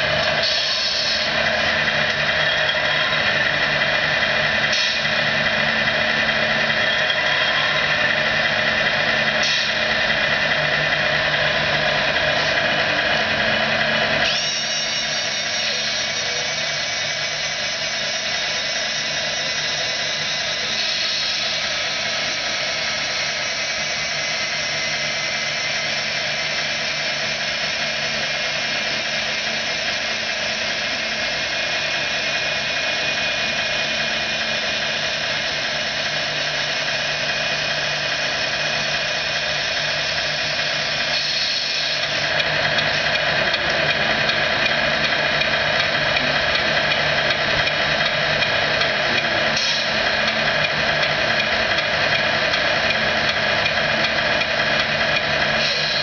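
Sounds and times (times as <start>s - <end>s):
small electric motors whining: 0.0s - 56.0s.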